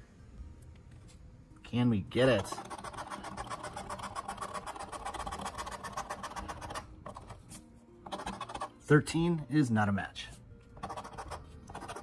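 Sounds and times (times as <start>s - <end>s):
coin scratching lottery ticket: 2.2s - 8.9s, 10.8s - 12.0s.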